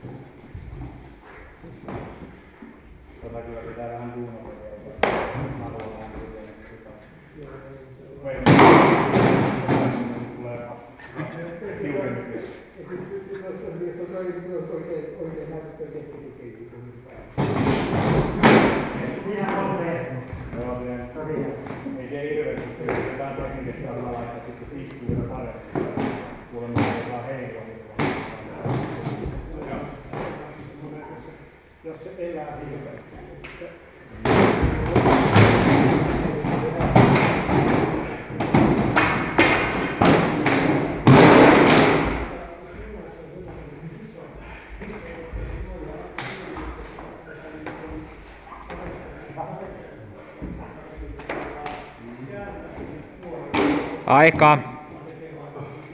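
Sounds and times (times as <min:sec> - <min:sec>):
weapons striking shields: 0:08.4 - 0:10.1, 0:17.4 - 0:19.6, 0:34.2 - 0:42.4.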